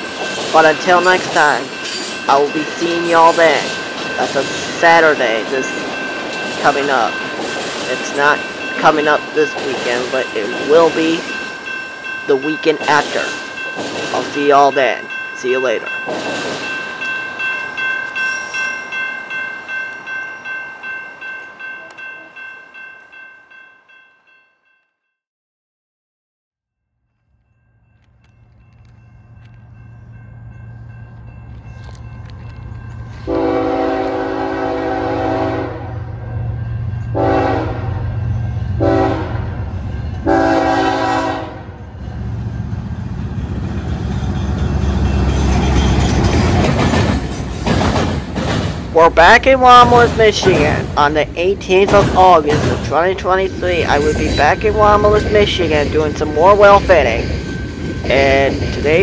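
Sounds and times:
freight train rumble: 0.0 - 23.3, 27.9 - 59.0
diesel locomotive engine drone: 27.8 - 59.0
train horn blasts: 33.2 - 36.2, 37.1 - 39.6, 40.2 - 41.8.

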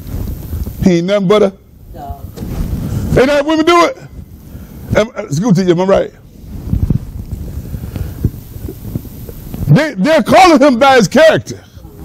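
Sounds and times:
microphone noise rumble: 0.0 - 1.0, 1.7 - 10.3.

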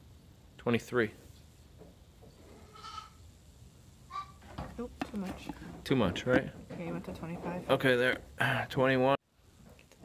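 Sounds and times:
goat bleating: 2.6 - 3.2.

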